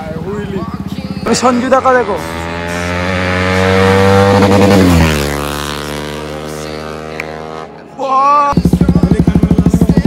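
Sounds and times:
motorcycle engine passing by: 0.0 - 7.8.

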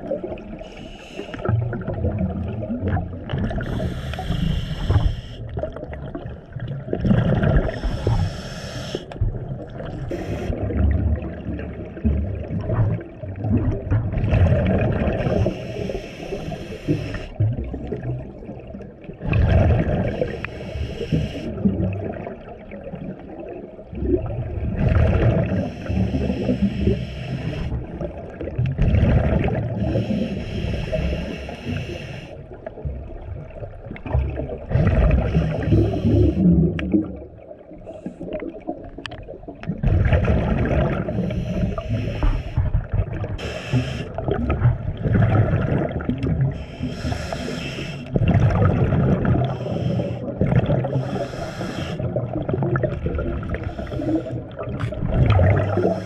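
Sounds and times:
hissing and bubbling: 0.0 - 56.0
diver breathing through regulator: 0.6 - 1.5, 3.5 - 5.5, 7.6 - 9.2, 10.1 - 10.8, 15.1 - 17.4, 19.9 - 21.7, 25.4 - 27.9, 29.6 - 32.5, 34.8 - 36.8, 40.9 - 44.4, 46.4 - 48.3, 49.2 - 52.2, 53.3 - 54.8, 55.5 - 56.0
low underwater rumble: 1.4 - 8.4, 9.2 - 16.2, 17.3 - 31.4, 32.4 - 56.0.

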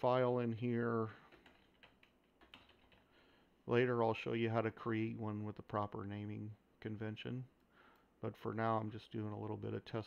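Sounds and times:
keyboard keys clicking: 1.3 - 3.1.

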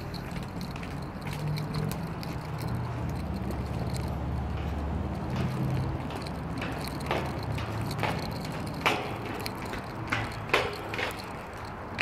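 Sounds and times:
footsteps on metal grating stairs: 0.0 - 12.0.

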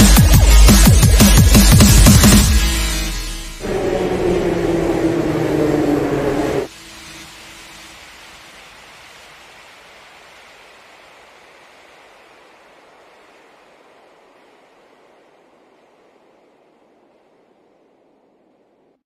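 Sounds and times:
background music: 0.0 - 7.1
soft even noise wash: 3.6 - 19.0.

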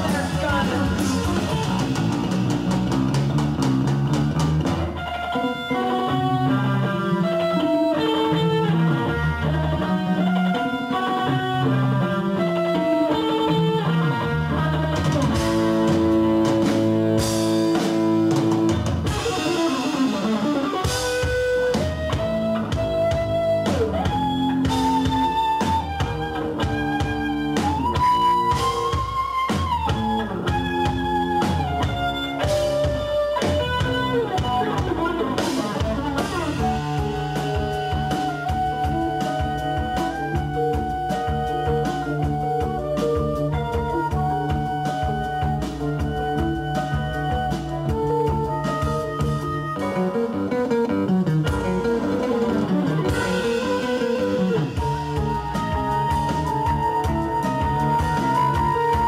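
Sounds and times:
bass: 0.0 - 59.0
drums: 0.0 - 59.0
electric guitar: 0.0 - 59.0
live rock band playing: 0.0 - 59.0
flute sliding notes: 4.9 - 59.0.

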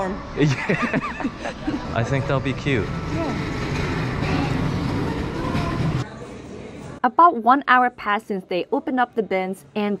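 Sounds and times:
rumbling din of busy store: 0.0 - 10.0.

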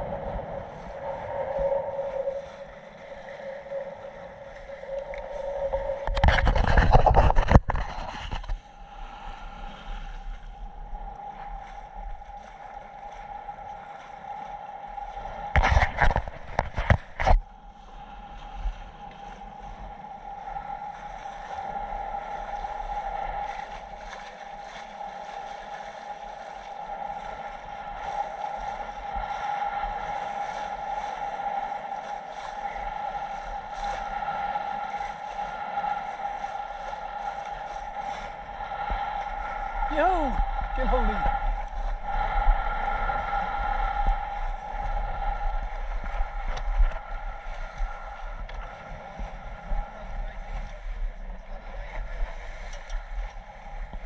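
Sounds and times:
steady whine: 0.0 - 54.0
water washing past boat hull: 0.0 - 54.0.

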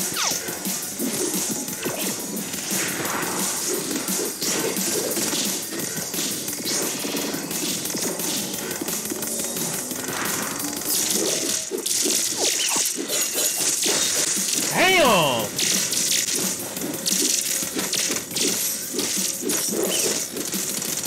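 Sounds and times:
music: 0.0 - 21.0.

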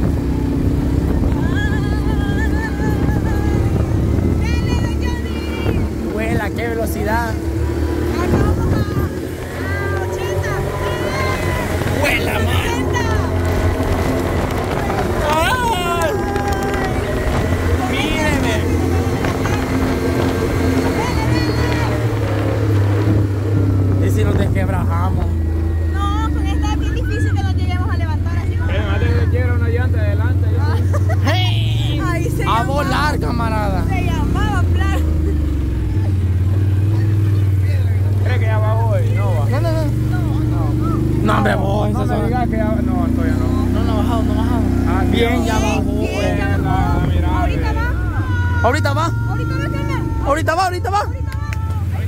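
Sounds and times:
wind on microphone: 0.0 - 6.6, 7.7 - 25.4
atv engine rumbling: 0.0 - 52.0
voices calling out: 0.0 - 52.0.

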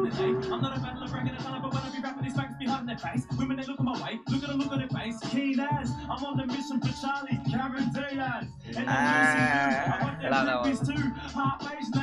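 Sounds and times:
man rapping over hip hop beat: 0.0 - 12.0.

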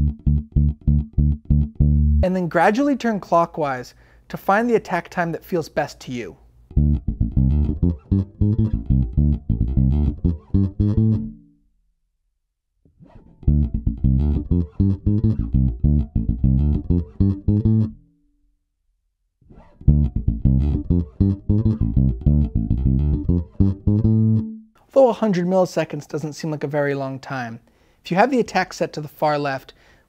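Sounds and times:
electric bass plucked notes: 0.0 - 2.3, 6.7 - 11.6, 13.0 - 18.2, 19.6 - 24.8.

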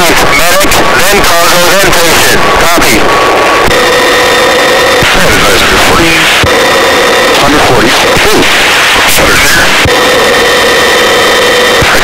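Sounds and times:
helicopter engine and rotor: 0.0 - 12.0
whining tones: 0.0 - 12.0.

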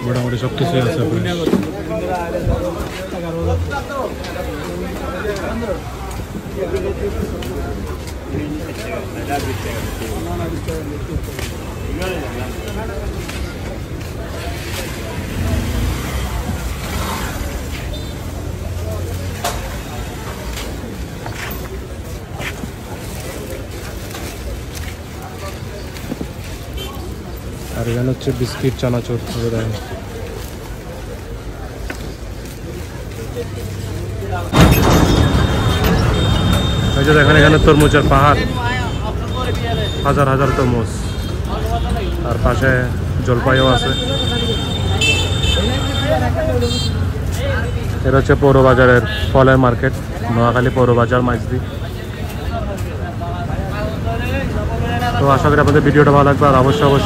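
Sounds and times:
indistinct voices: 0.0 - 57.0
high-pitched vehicle horns tooting: 34.9 - 42.3, 43.5 - 47.0.

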